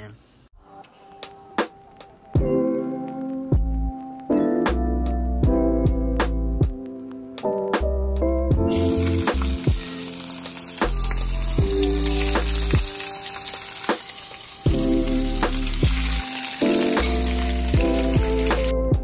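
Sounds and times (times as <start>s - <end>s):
music playing: 0.6s - 19.0s
fish frying in oil: 8.7s - 18.7s.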